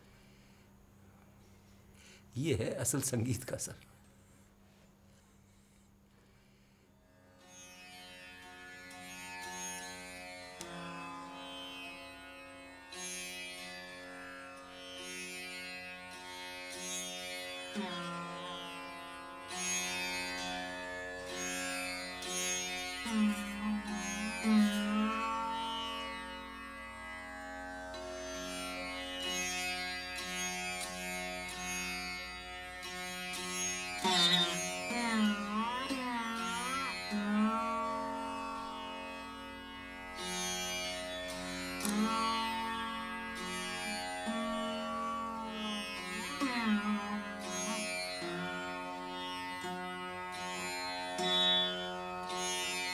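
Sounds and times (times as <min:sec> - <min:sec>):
plucked string instrument: 0:19.6 - 0:52.9.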